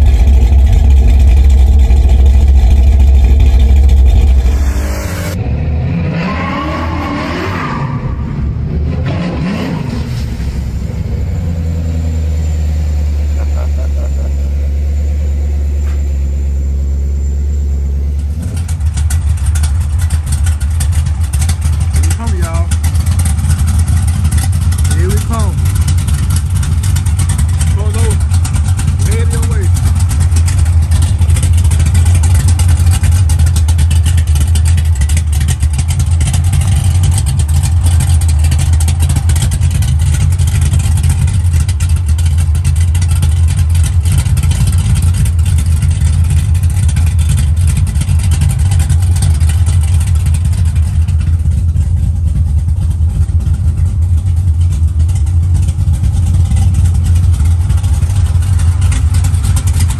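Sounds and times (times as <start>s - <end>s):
car engine exhaust rumble: 0.0s - 59.9s.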